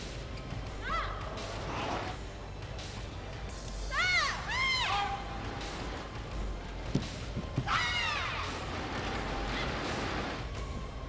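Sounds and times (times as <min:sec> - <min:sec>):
soft thuds: 0:06.8 - 0:07.8.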